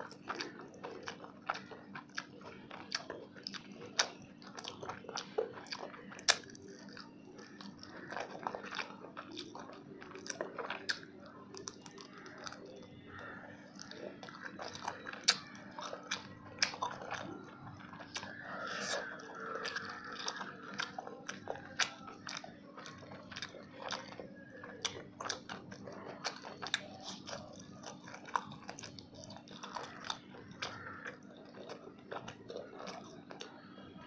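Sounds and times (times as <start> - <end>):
chewing crunchy fried fish: 0.0 - 34.0.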